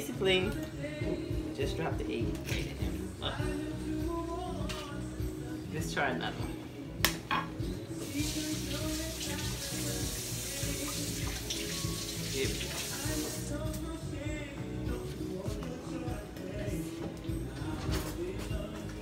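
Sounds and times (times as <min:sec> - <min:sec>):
kitchen tap running: 0:08.0 - 0:13.5.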